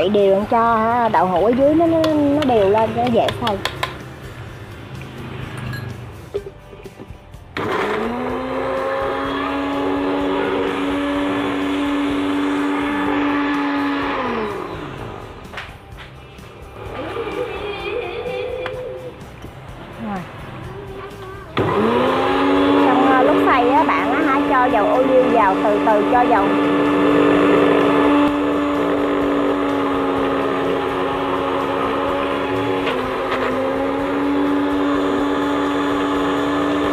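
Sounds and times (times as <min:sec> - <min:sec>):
blender motor whine: 0:07.5 - 0:15.4, 0:16.7 - 0:18.0, 0:21.6 - 0:36.9.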